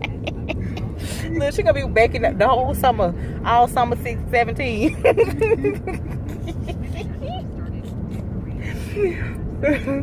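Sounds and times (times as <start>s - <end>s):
car interior rumble: 0.0s - 10.0s
faint voices: 6.5s - 10.0s.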